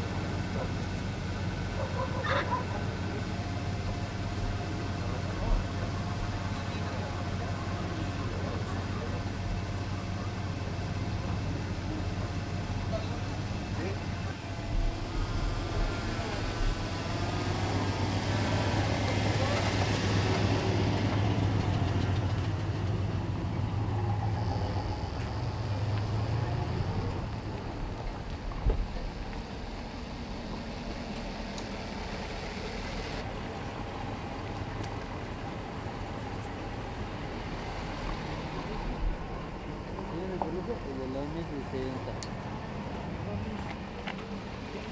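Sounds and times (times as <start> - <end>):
vehicle engines driving past: 0.0 - 44.9.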